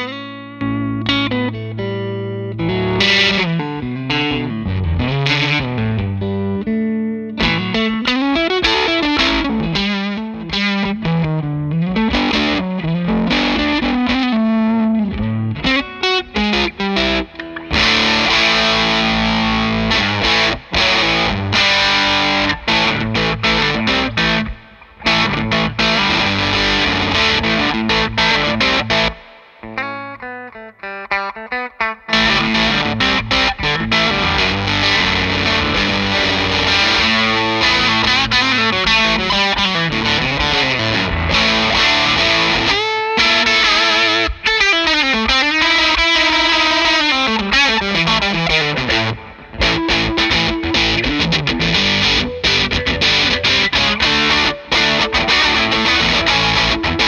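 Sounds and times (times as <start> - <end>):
distorted electric guitar: 0.0 - 57.0.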